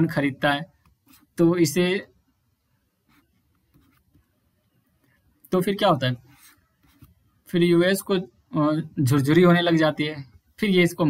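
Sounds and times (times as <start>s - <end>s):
stylus scratching on pen tablet: 2.9s - 5.4s, 6.2s - 7.4s.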